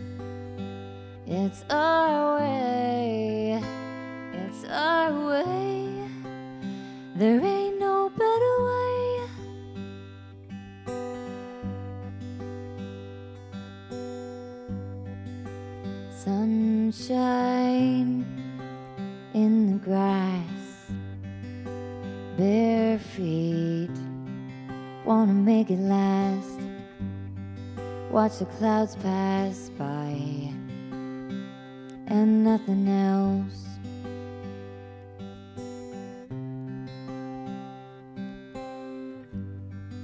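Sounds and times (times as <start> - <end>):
strummed acoustic guitar: 0.0 - 40.0
woman singing slow song: 0.5 - 9.7, 15.9 - 21.1, 21.7 - 27.1, 27.8 - 31.0, 31.9 - 34.3.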